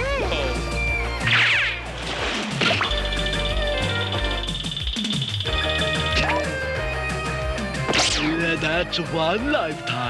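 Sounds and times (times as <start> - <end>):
cartoon background music: 0.0 - 10.0
swooping sound effect: 1.2 - 3.0.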